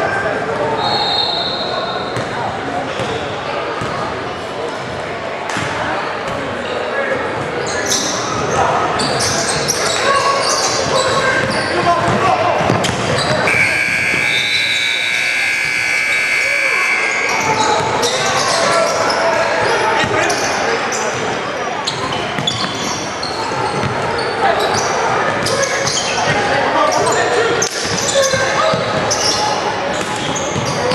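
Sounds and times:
spectators' voices: 0:00.0 - 0:30.9
basketball bouncing on court: 0:11.3 - 0:14.4, 0:23.7 - 0:25.6
scoreboard buzzer: 0:13.5 - 0:17.6.

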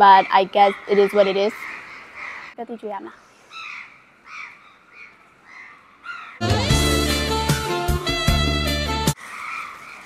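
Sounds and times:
hoarse bird calls: 0:00.0 - 0:06.4, 0:09.2 - 0:10.0.

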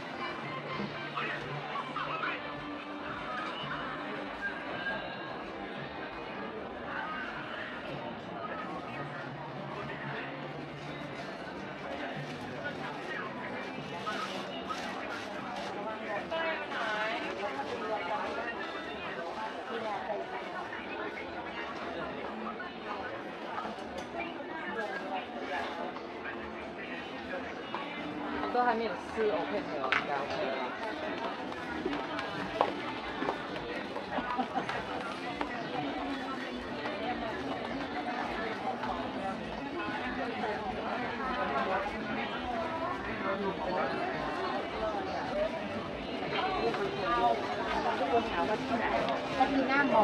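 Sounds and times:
shoppers chattering: 0:00.0 - 0:50.0.

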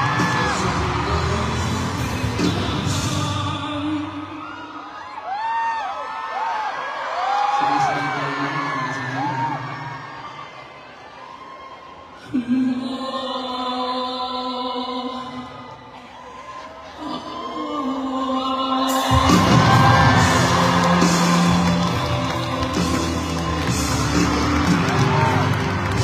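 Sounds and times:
band music: 0:00.0 - 0:04.1, 0:18.9 - 0:26.0
audience screaming and whooping: 0:00.0 - 0:12.2, 0:18.8 - 0:26.0.

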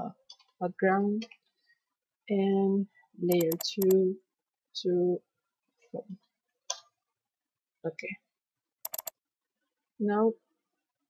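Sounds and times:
computer mouse clicking: 0:03.3 - 0:04.0, 0:08.8 - 0:09.2.

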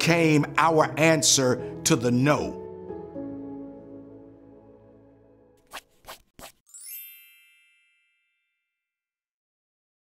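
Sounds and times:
bell-like chime: 0:06.7 - 0:08.8.

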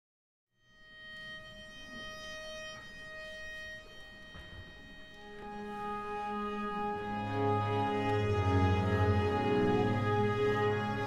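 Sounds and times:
string ensemble holding notes: 0:00.8 - 0:11.0.

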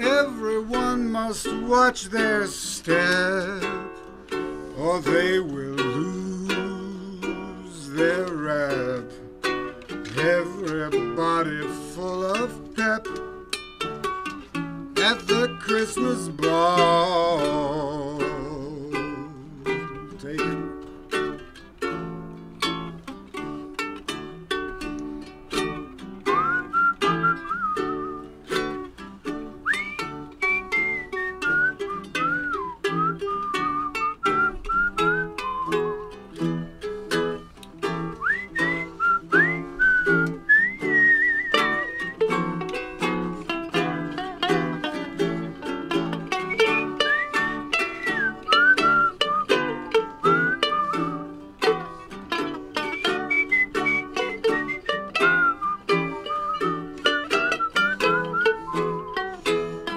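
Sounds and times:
ukulele strumming: 0:00.0 - 0:59.9
whistled melody: 0:25.5 - 0:59.9.

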